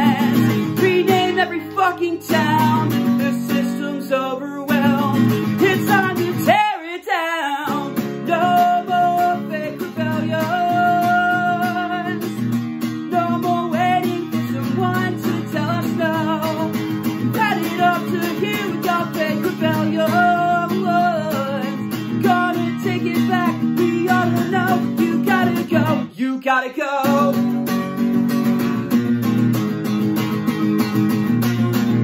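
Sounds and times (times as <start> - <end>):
man singing: 0.0 - 29.1, 31.3 - 32.0
acoustic guitar strumming: 0.0 - 32.0.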